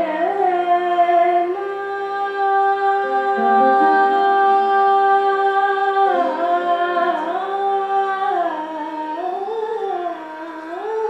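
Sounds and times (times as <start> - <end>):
woman singing classical vocal: 0.0 - 11.0.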